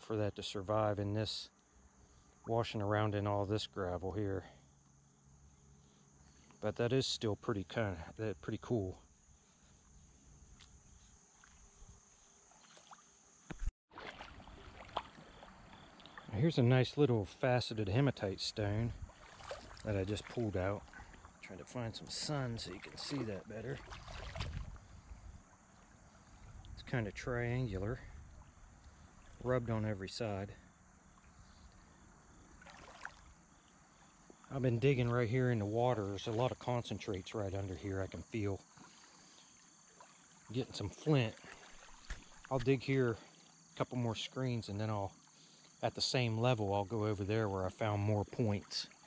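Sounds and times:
high insect trill: 0:00.2 - 0:49.0
faint ticks: 0:01.5 - 0:01.8, 0:04.8 - 0:05.0, 0:09.8 - 0:13.7, 0:14.9 - 0:16.4, 0:28.2 - 0:29.4
lake water lapping: 0:09.1 - 0:43.8
small water splashes: 0:12.4 - 0:16.4, 0:18.6 - 0:26.9, 0:28.0 - 0:29.6, 0:30.9 - 0:35.3, 0:38.6 - 0:43.7.

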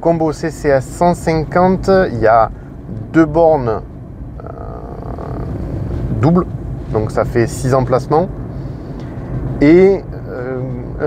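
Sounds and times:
road and tyre rumble in cabin: 0:00.0 - 0:11.0.

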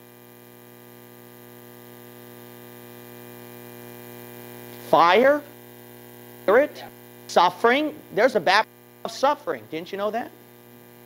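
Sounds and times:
steady electrical hum: 0:00.0 - 0:11.0
person speaking: 0:04.8 - 0:05.5, 0:06.5 - 0:10.4.

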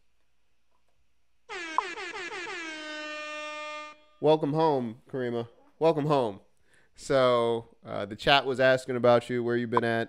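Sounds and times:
air horn blast: 0:01.5 - 0:04.3.

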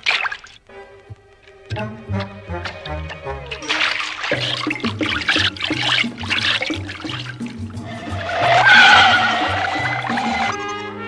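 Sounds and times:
cartoon score bass line: 0:01.7 - 0:03.8, 0:04.4 - 0:11.0
whoosh-and-whine sound effect: 0:07.9 - 0:10.6.

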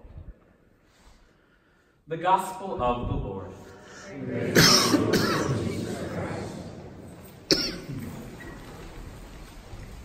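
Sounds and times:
man coughing: 0:04.5 - 0:05.7, 0:07.5 - 0:08.1.

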